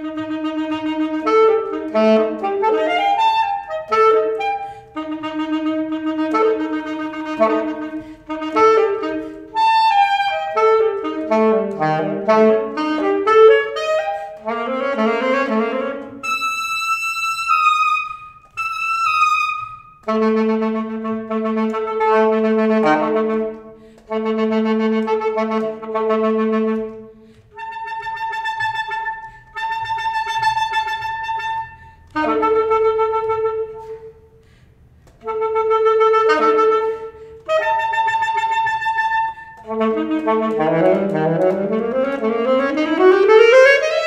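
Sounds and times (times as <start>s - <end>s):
alto saxophone solo: 0.0s - 44.0s
saxophonist breathing: 4.5s - 5.0s, 8.0s - 8.3s, 23.8s - 24.1s, 27.1s - 27.5s, 34.3s - 35.0s.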